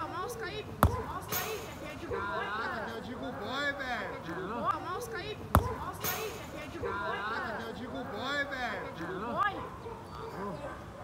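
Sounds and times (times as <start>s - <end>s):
players' voices: 0.0s - 11.0s
football kicked thud: 0.8s - 1.7s, 5.5s - 6.4s.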